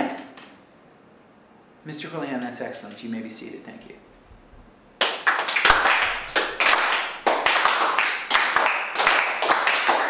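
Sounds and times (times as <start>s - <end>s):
small group applauding: 5.0s - 10.0s.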